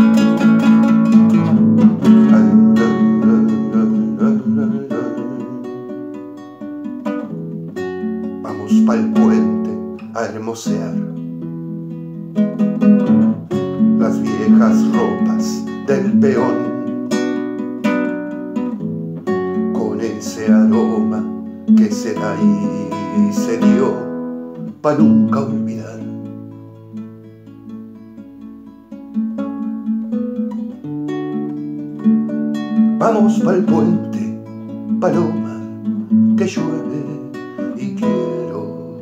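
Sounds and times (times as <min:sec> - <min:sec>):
classical guitar strumming: 0:00.0 - 0:39.0
person singing: 0:01.8 - 0:06.0, 0:08.4 - 0:11.1, 0:13.9 - 0:17.0, 0:19.6 - 0:26.2, 0:32.8 - 0:39.0.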